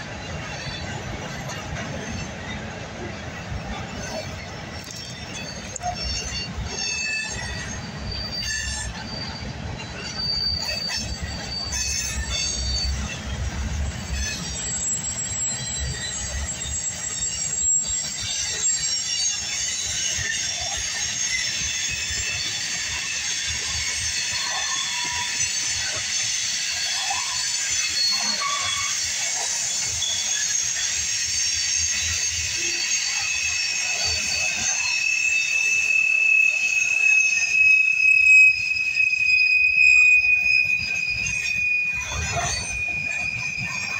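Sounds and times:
train wheels rumbling on rail: 0.0 - 43.9
train wheels squealing: 0.0 - 43.9.

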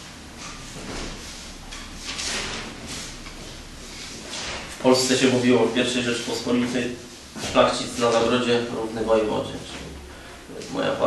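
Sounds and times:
paper sheets rustling: 0.4 - 3.2.

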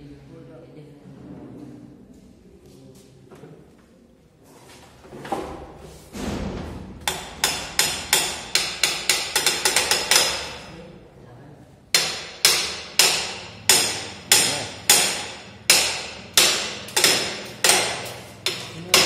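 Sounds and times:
sharp ringing knocks: 6.2 - 10.7, 11.9 - 19.0.

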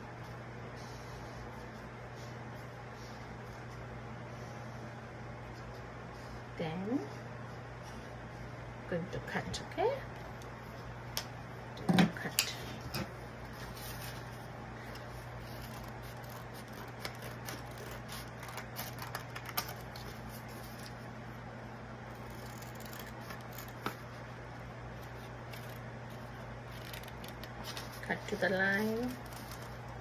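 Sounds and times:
steady low hum: 0.0 - 30.0
paper rustling: 13.5 - 21.0, 25.0 - 30.0
scissors snipping paper: 14.9 - 21.0, 22.1 - 24.1, 25.0 - 30.0.

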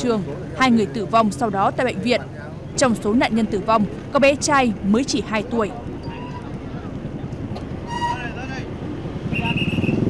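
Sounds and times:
distant voices: 0.0 - 10.0
low vehicle rumble: 0.0 - 10.0.

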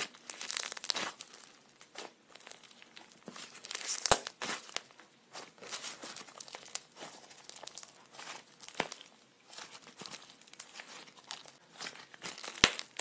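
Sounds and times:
slime squeezed crackling: 0.0 - 13.0.

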